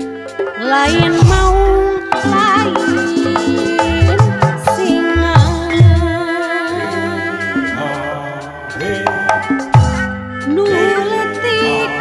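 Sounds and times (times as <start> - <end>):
person singing long note: 10.5 - 12.0.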